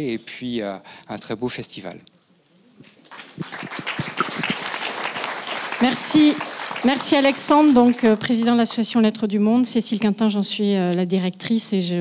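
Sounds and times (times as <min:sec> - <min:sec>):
audience applauding: 0:03.0 - 0:08.8.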